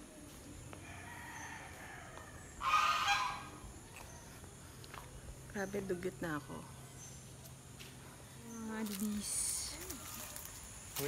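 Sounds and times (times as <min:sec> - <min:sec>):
farmyard bird calling: 0:00.8 - 0:04.4.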